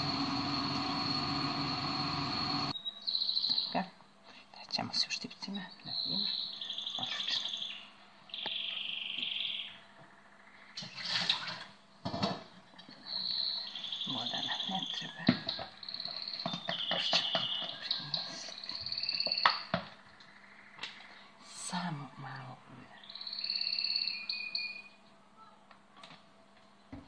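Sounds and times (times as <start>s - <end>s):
songbird chirping and trilling: 0.0s - 4.0s, 5.0s - 10.8s, 12.9s - 25.0s.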